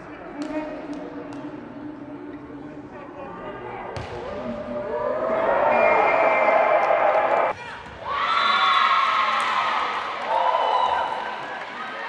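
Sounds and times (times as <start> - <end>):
players and spectators cheering: 4.2 - 12.0.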